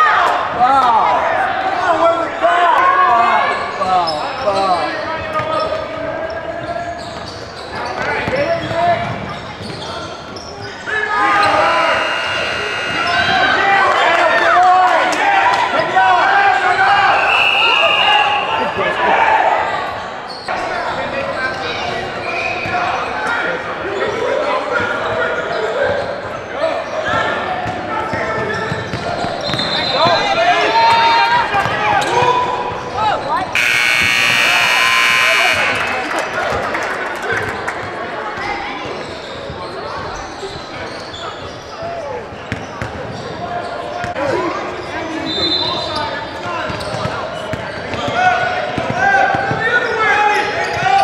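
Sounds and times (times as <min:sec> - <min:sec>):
people shouting and cheering: 0:10.8 - 0:20.8, 0:29.9 - 0:38.8
scoreboard horn: 0:11.4 - 0:13.6, 0:33.6 - 0:36.4.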